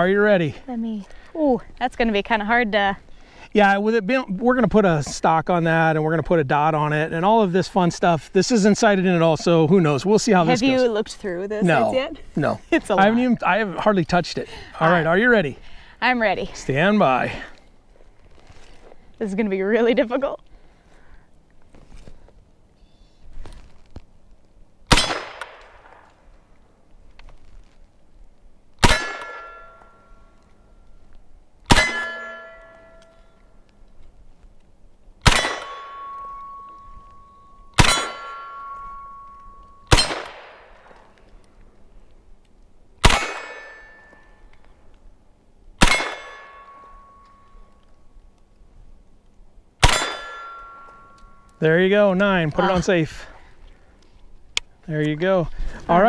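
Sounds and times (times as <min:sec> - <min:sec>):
pistol shots: 0:24.9 - 0:26.0, 0:28.8 - 0:29.6, 0:31.7 - 0:32.4, 0:35.2 - 0:36.1, 0:37.8 - 0:38.5, 0:39.9 - 0:40.9, 0:43.0 - 0:44.0, 0:45.8 - 0:46.7, 0:49.8 - 0:50.5
steel target ringing: 0:28.8 - 0:30.2, 0:31.7 - 0:33.4, 0:35.3 - 0:40.4, 0:43.0 - 0:44.4, 0:45.8 - 0:47.7, 0:49.8 - 0:51.6.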